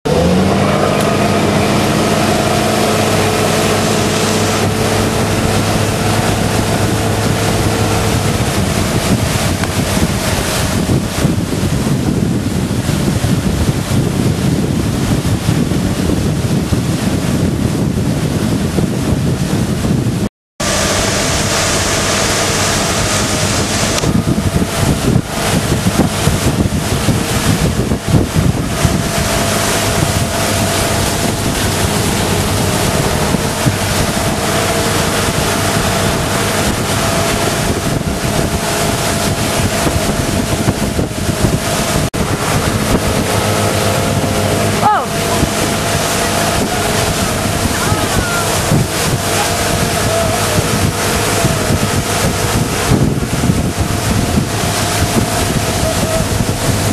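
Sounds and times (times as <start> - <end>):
motorboat engine running: 0.0 - 56.9
water rushing past hull: 0.0 - 56.9
wind buffeting microphone: 0.1 - 56.9.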